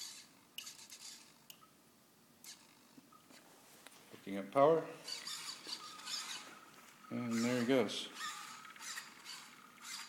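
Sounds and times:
robot motors whirring: 0.0s - 1.4s, 5.1s - 6.6s, 7.3s - 10.0s.

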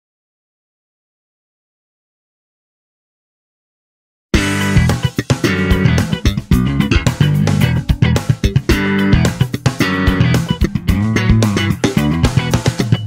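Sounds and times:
slap bass funk groove: 4.4s - 13.0s.

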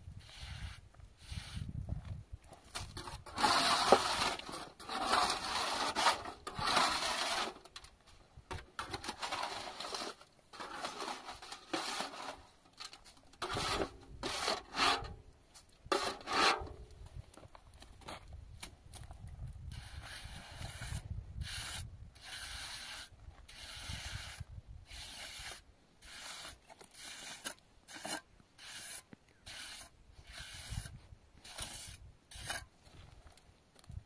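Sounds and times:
trowel scraping plaster: 2.8s - 7.9s, 8.5s - 15.2s, 15.9s - 16.8s, 19.7s - 32.7s.

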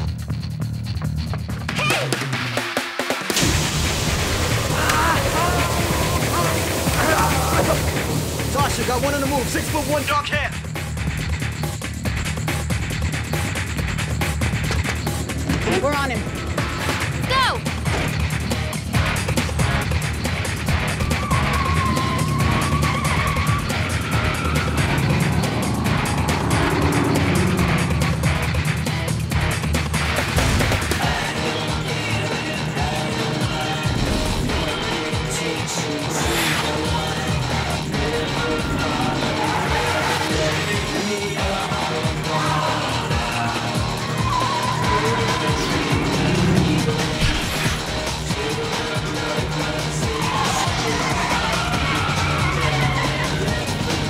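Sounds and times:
action background music: 0.0s - 54.0s
car engines revving: 10.9s - 54.0s
tyres squealing: 20.8s - 29.1s.

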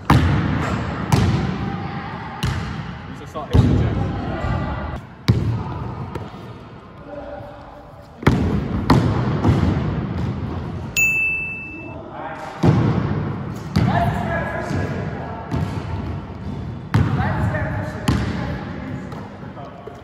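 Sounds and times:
steady high tone: 11.0s - 12.0s.

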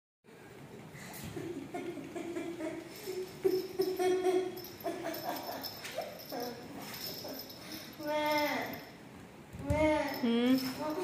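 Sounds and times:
puppy whining: 3.0s - 8.8s.

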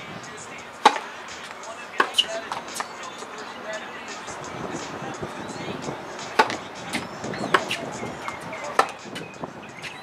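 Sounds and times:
tennis ball bouncing on court: 0.8s - 1.1s, 2.0s - 3.3s, 6.2s - 9.0s
tennis ball struck by rackets: 0.8s - 3.4s, 6.2s - 9.2s.

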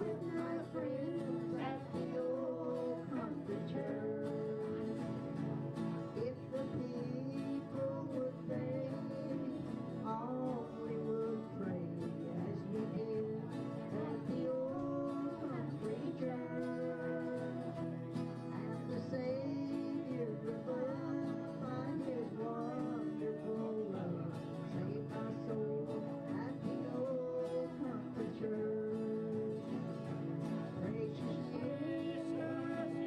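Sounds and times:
woman singing: 0.0s - 5.0s, 6.2s - 17.8s, 18.4s - 29.6s, 30.8s - 33.0s
acoustic guitars strummed: 0.0s - 33.0s.

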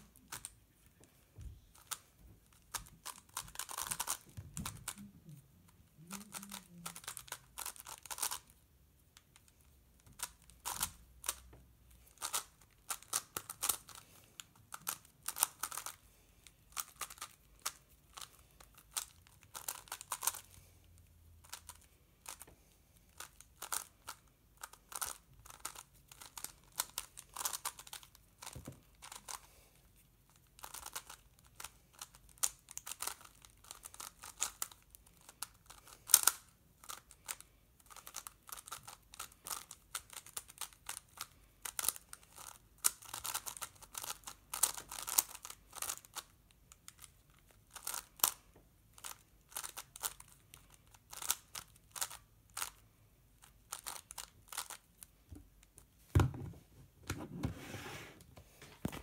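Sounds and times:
puzzle cube faces clacking: 1.7s - 8.6s, 10.1s - 11.5s, 12.1s - 14.0s, 53.6s - 54.8s
plastic puzzle cube clicking: 1.8s - 5.0s, 6.1s - 8.6s, 9.2s - 11.5s, 12.1s - 14.0s, 14.8s - 16.0s, 16.7s - 20.5s, 23.1s - 29.5s, 30.4s - 52.8s, 53.4s - 55.0s.

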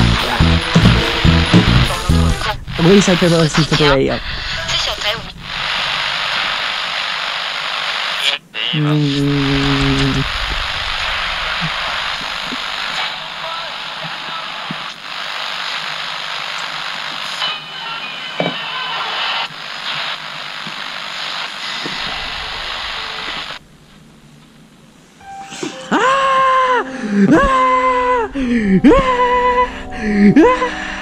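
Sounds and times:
radio static hiss: 0.0s - 25.3s
person screaming: 25.9s - 30.8s.

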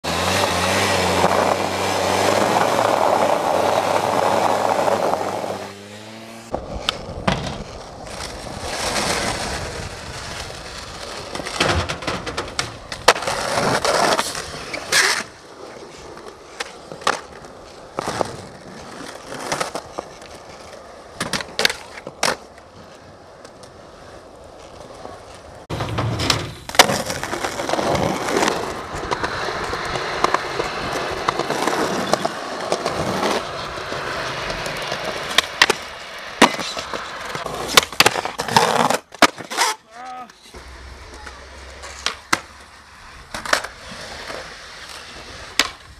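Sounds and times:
skateboard wheels rolling on concrete: 0.0s - 45.9s
skateboard popping and landing clacks: 6.5s - 23.8s, 24.5s - 45.9s.

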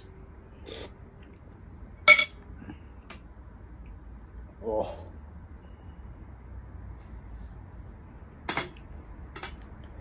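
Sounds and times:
metal spoon clinking glass bowl: 2.1s - 2.4s.

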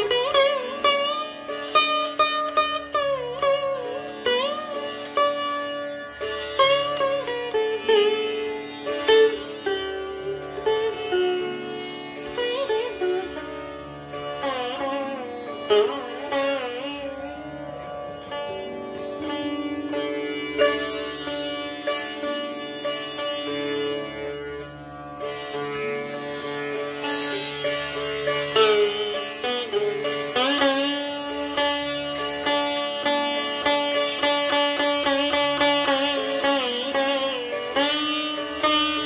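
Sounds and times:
sitar plucked notes: 0.0s - 39.0s.

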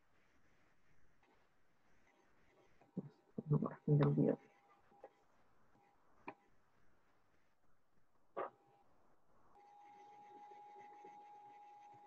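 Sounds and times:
faint high steady tone: 8.7s - 12.0s.

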